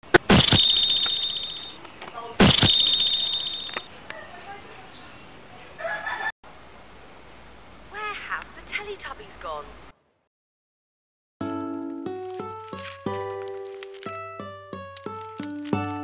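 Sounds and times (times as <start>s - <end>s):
sharp hit with high ringing tone: 0.2s - 1.8s, 2.4s - 3.8s.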